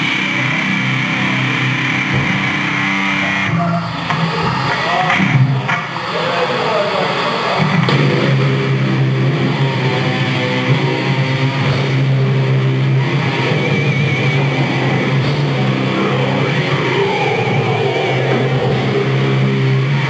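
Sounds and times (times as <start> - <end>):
live rock band playing: 0.0 - 5.7, 7.6 - 20.0.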